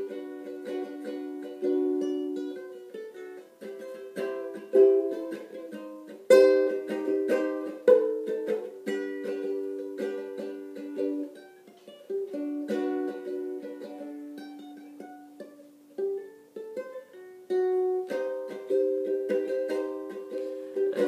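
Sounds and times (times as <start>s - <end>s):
ukulele plucking: 0.0s - 21.0s.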